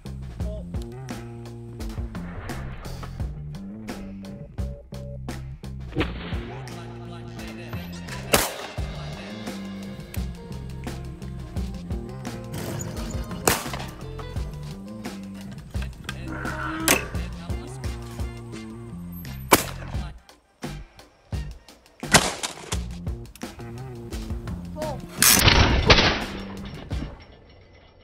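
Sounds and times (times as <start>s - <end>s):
background music: 0.0s - 27.4s
loud shotgun shots: 8.2s - 9.1s, 13.4s - 14.0s, 19.5s - 20.0s, 22.0s - 22.8s, 25.2s - 26.6s.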